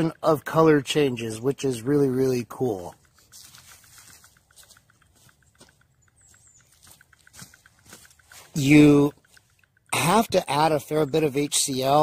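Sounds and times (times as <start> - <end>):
stir bar ticking in glass beaker: 0.0 - 12.0.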